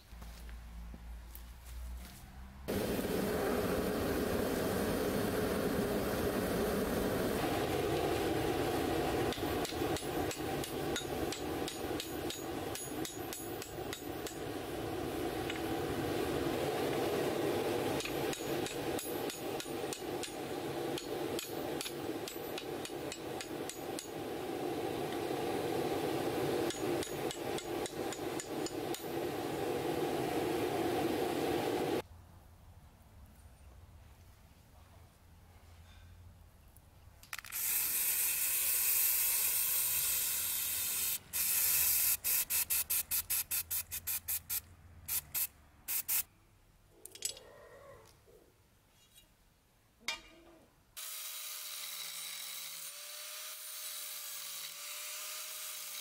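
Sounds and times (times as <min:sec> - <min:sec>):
steady rushing noise: 0:02.7 - 0:32.0
sledge hammer striking hot metal: 0:07.6 - 0:14.8, 0:17.7 - 0:24.7, 0:26.2 - 0:29.6.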